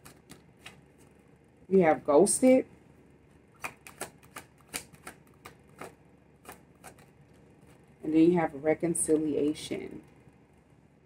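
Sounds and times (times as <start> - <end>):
cards being shuffled: 0.0 - 1.2, 3.5 - 7.9.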